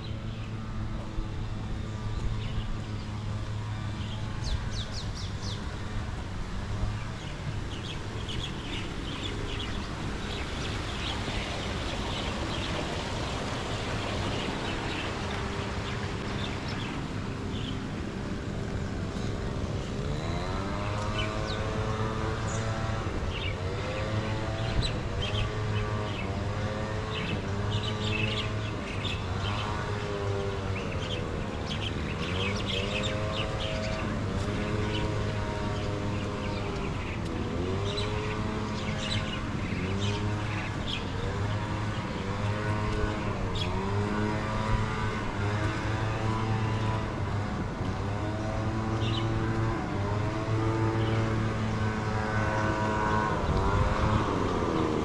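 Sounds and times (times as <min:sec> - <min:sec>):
small birds chirping: 0:06.8 - 0:18.0, 0:18.8 - 0:55.0.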